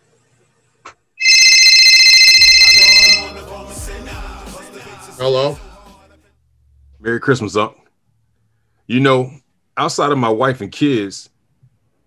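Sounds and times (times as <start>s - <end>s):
telephone ringing: 1.2s - 3.4s
background music: 2.4s - 6.3s.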